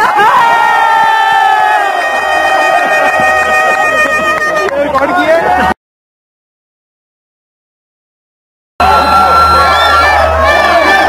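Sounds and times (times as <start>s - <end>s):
crowd shouting and cheering: 0.0s - 5.8s, 8.8s - 11.0s.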